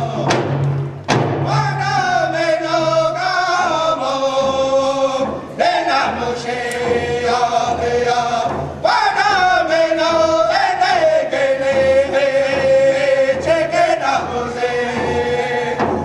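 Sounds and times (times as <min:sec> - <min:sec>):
group of singers singing: 0:00.0 - 0:00.6, 0:01.4 - 0:16.0
hand drum beat: 0:00.0 - 0:16.0.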